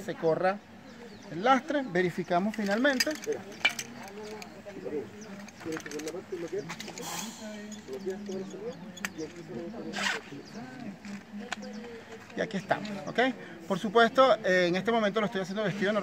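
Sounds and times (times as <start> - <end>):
buckle and weights clicking: 2.2 - 10.2
webbing rasping through buckle: 2.2 - 11.4.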